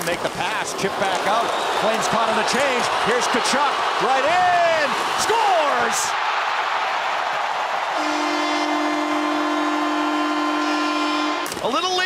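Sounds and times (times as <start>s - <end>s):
crowd cheering: 0.0s - 12.0s
arena goal horn: 7.9s - 11.6s.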